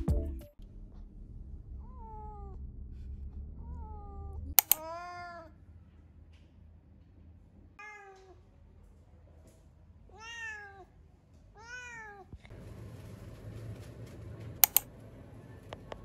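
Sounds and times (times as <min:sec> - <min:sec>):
low steady background noise: 0:00.6 - 0:16.0
cat meowing: 0:01.8 - 0:02.6, 0:03.7 - 0:05.6, 0:07.8 - 0:08.5, 0:10.1 - 0:10.9, 0:11.6 - 0:12.4
sharp clicks: 0:04.5 - 0:04.8, 0:14.6 - 0:14.9.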